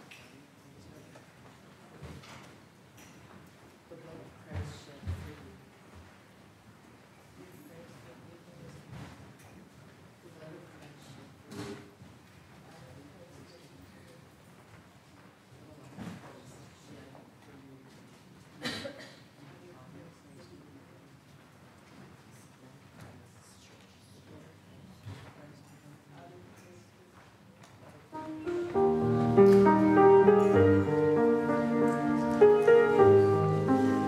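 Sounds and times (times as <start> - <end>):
faint shuffling: 21.3 - 34.0
keyboard chords: 28.2 - 34.0.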